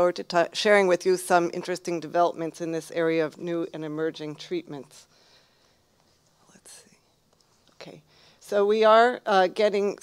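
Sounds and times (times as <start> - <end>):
faint breath hiss: 4.8 - 8.9.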